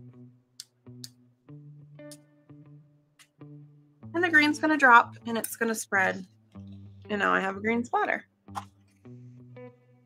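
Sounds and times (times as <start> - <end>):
slow guitar music: 0.0 - 10.0.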